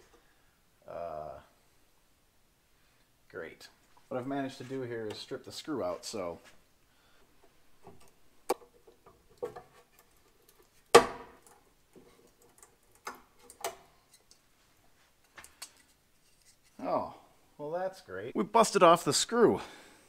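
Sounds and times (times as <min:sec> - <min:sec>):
sharp plastic crack: 0:10.9 - 0:11.6.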